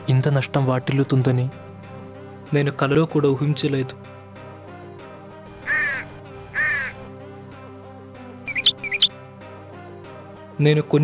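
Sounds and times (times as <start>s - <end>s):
background music: 0.0s - 11.0s
crow cawing: 5.6s - 7.1s, 8.5s - 9.1s.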